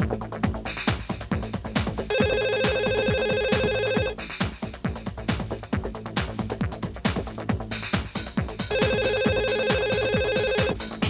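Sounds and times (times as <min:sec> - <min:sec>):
fast techno beat: 0:00.0 - 0:11.0
electronic telephone ringer trilling: 0:02.1 - 0:04.1, 0:08.7 - 0:10.8.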